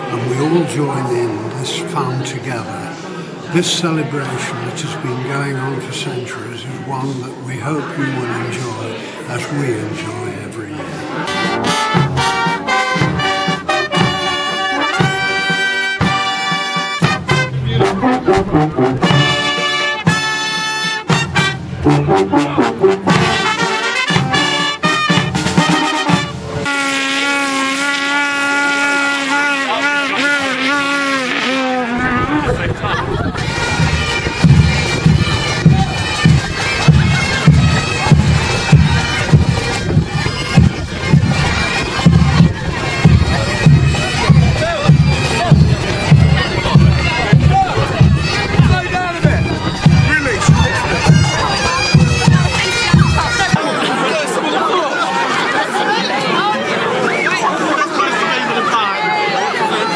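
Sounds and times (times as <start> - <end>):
brass band: 0.0 - 59.9
crowd chatter: 0.0 - 59.9
bagpipes sustained note: 11.1 - 32.6.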